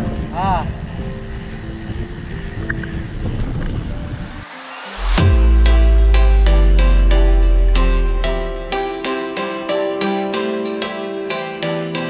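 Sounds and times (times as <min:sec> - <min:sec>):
wind rumble on microphone: 0:00.0 - 0:05.2
quiet music sustained chords: 0:00.0 - 0:12.0.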